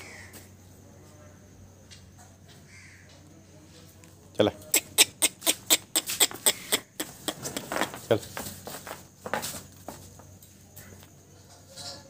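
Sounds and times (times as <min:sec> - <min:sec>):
distant bird caw: 0:00.0 - 0:00.5, 0:02.7 - 0:03.2.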